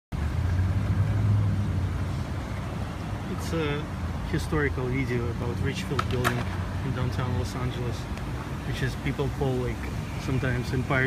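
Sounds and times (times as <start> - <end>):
street traffic rumble: 0.1 - 11.0.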